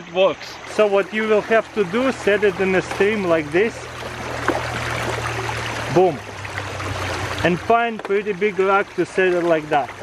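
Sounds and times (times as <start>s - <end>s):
stream rushing over rocks: 0.6s - 10.0s.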